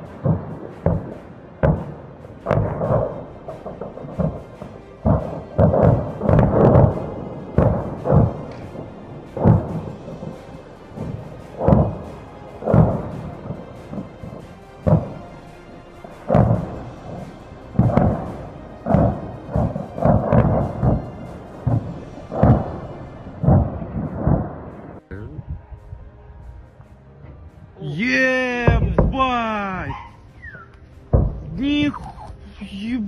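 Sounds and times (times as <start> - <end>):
munitions detonating booms: 0.0 - 10.3, 11.0 - 15.2, 16.3 - 17.2, 17.8 - 25.0, 28.6 - 29.4, 31.1 - 31.5
rumble after explosions: 0.0 - 15.2, 16.2 - 26.9.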